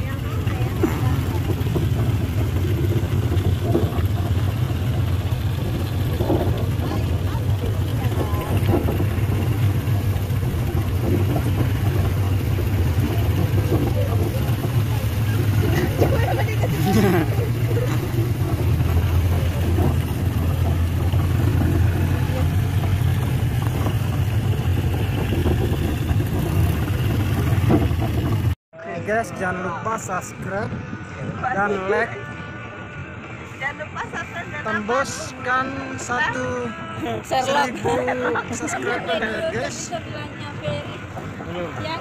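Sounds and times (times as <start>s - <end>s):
voices: 0.0s - 27.1s, 28.8s - 42.0s
vehicle engine droning: 0.0s - 42.0s.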